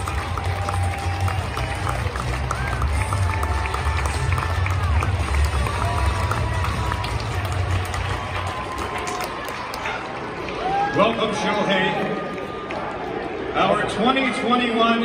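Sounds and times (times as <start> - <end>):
music over loudspeakers: 0.0 - 8.2
stadium crowd cheering: 0.0 - 15.0.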